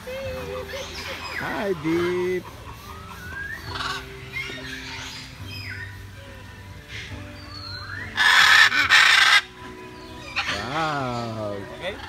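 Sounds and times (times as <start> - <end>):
macaw squawk: 0.4 - 6.0, 6.9 - 12.0.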